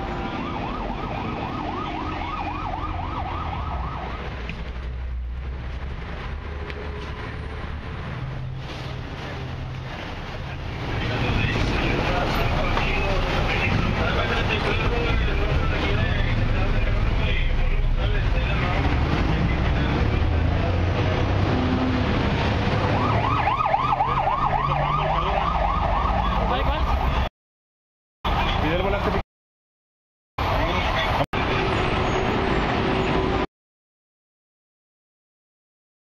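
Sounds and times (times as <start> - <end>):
siren yelping: 0.0 - 4.4, 22.8 - 27.3
vehicle engines running: 2.5 - 25.8
people talking: 9.2 - 20.9, 28.3 - 29.2, 30.5 - 31.8.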